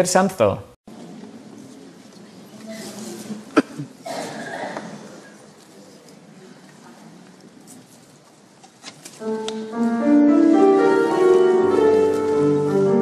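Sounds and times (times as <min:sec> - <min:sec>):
strings and bandoneon playing: 0:09.2 - 0:13.0.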